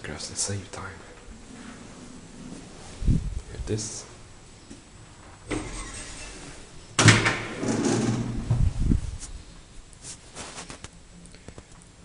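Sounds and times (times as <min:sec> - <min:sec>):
elevator door clatter: 0:05.5 - 0:08.7.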